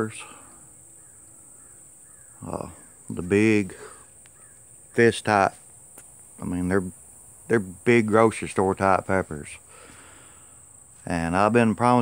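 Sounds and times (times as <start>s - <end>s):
faint high-pitched hiss: 0.0s - 12.0s
man's voice: 11.1s - 12.0s.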